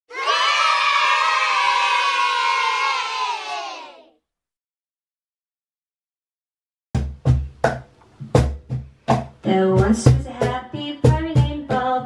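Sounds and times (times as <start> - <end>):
children cheering and shouting: 0.1 - 4.2.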